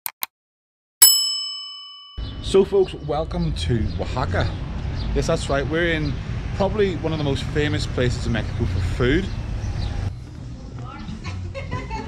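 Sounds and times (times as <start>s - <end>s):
bright bell ding: 1.0s - 2.7s.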